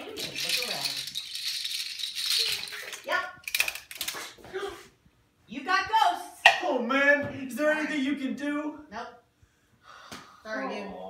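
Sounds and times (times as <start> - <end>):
steady rattling: 0.0 - 4.0.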